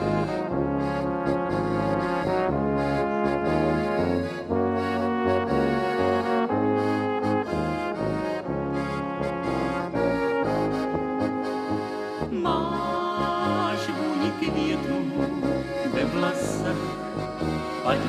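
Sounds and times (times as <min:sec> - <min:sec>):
accordion: 0:00.0 - 0:18.0
brass band music: 0:00.0 - 0:18.0.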